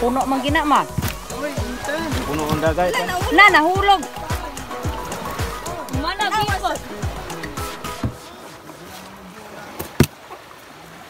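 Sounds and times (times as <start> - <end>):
distant voices murmuring: 0.0 - 9.9.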